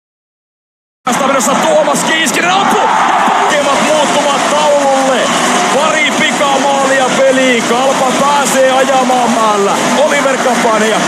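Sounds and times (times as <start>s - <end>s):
commentator speaking: 1.1s - 11.0s
ice hockey arena background noise: 1.1s - 11.0s.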